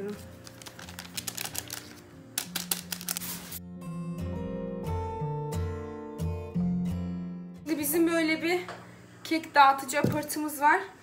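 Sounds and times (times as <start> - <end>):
paper sachet crinkling: 0.0 - 3.6
background music melody: 0.0 - 8.6.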